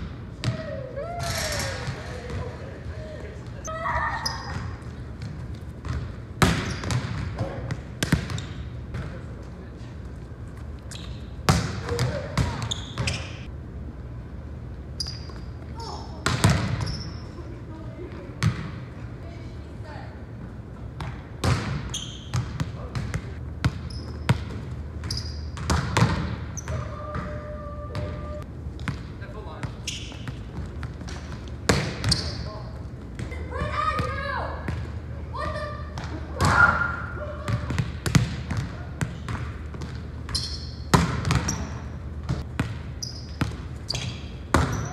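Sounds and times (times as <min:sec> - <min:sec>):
volleyball hits echoing in gym: 0:00.0 - 0:09.4, 0:11.2 - 0:13.6, 0:15.0 - 0:19.1, 0:20.8 - 0:44.9.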